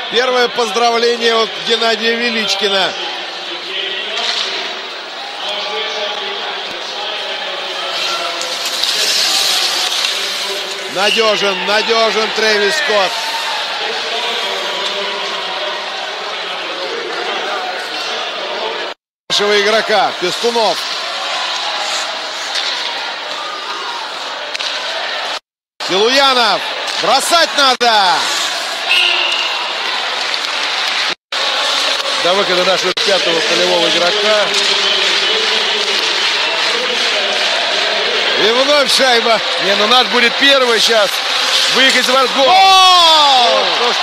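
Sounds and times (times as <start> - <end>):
arena crowd voices: 0.0 - 44.0.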